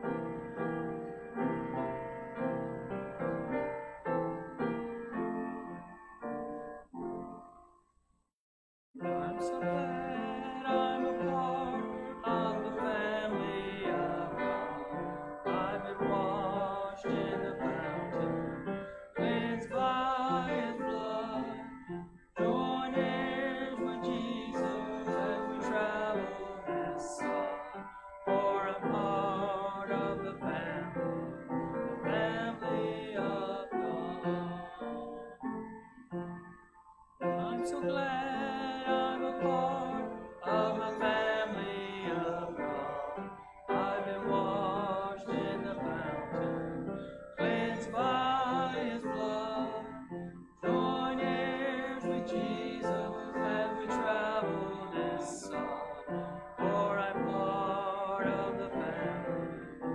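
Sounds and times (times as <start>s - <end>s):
piano chords: 0.0s - 7.8s, 9.0s - 59.9s
voices singing a hymn: 9.0s - 36.3s, 37.2s - 59.9s.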